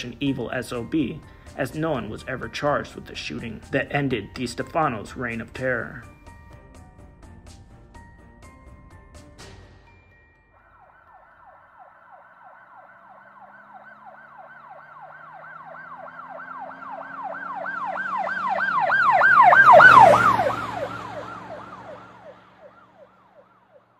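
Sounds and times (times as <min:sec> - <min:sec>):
road and engine noise: 0:00.0 - 0:23.9
siren wailing: 0:10.5 - 0:23.9.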